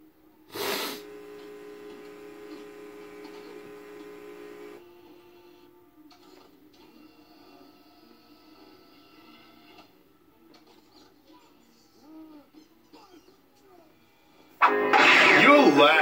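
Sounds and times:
tape hiss: 0:00.0 - 0:04.8
buzzing hum: 0:00.6 - 0:04.8.

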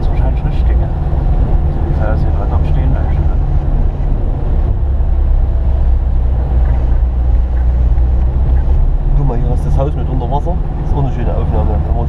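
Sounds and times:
vehicle engine drone: 0:00.0 - 0:12.0.

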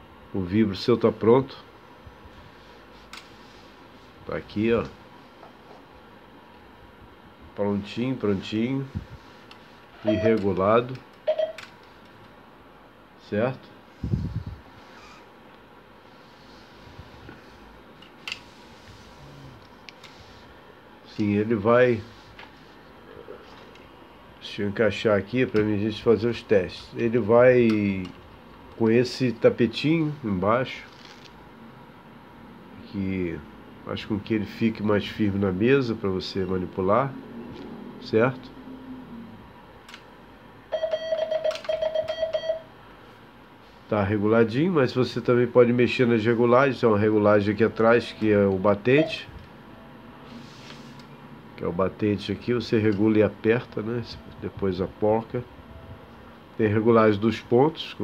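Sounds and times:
morse code beeping: 0:10.0 - 0:10.5, 0:11.2 - 0:11.6, 0:40.7 - 0:42.7, 0:48.9 - 0:49.3.

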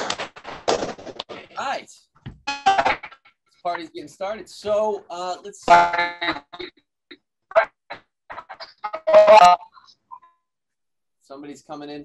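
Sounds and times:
scattered claps: 0:00.0 - 0:01.7, 0:02.3 - 0:04.0
people reacting on video call: 0:01.4 - 0:10.3.

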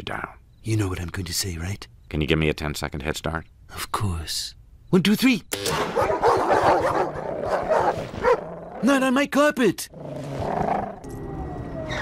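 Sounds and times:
dogs barking: 0:05.8 - 0:08.5.

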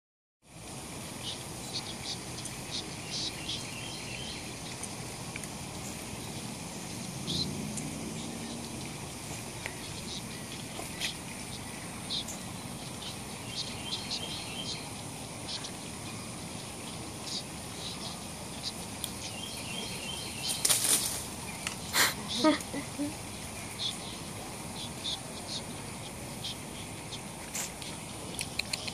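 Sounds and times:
insect drone: 0:00.5 - 0:27.3.

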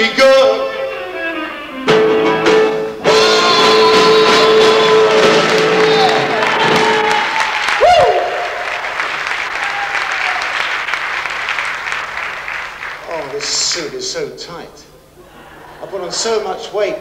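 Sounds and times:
rock and roll song: 0:00.0 - 0:07.3
audience applauding: 0:03.3 - 0:13.6.

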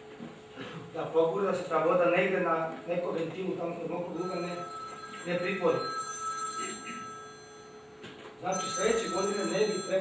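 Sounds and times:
high-pitched ringing tones: 0:03.9 - 0:10.0.

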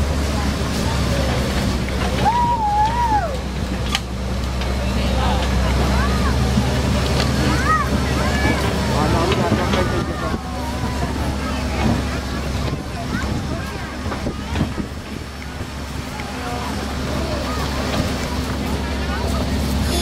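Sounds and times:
passengers chattering: 0:00.0 - 0:20.0
tractor engine running: 0:00.0 - 0:20.0.

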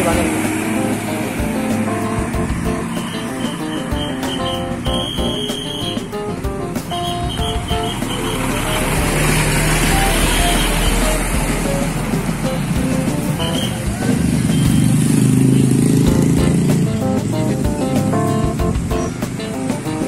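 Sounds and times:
guitar music: 0:00.0 - 0:20.0
motorcycle engines running: 0:00.0 - 0:20.0
heavy truck driving past: 0:06.8 - 0:16.9.

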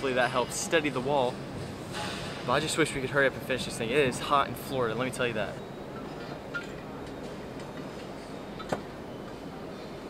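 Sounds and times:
exhibition hall room noise: 0:00.0 - 0:10.0.

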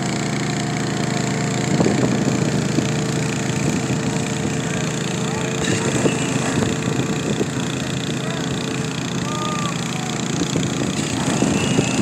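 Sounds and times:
diesel roller engine running: 0:00.0 - 0:12.0.

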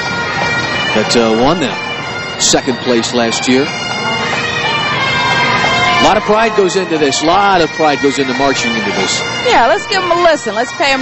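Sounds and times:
bagpipe drones: 0:00.0 - 0:11.0
bagpipes playing a tune: 0:00.0 - 0:11.0.

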